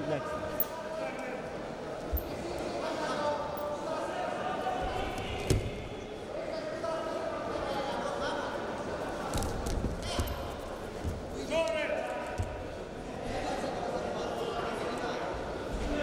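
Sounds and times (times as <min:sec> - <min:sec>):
voices echoing in a hall: 0:00.0 - 0:16.0.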